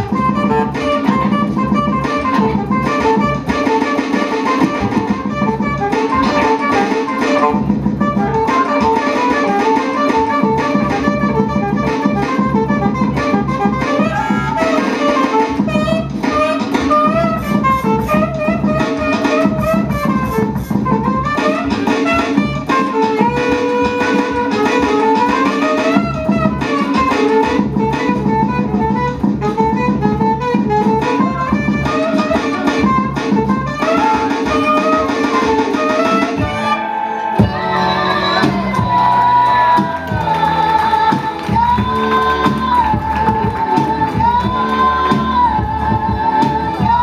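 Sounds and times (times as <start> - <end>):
live band music: 0.0 - 47.0
saxophone: 0.0 - 47.0.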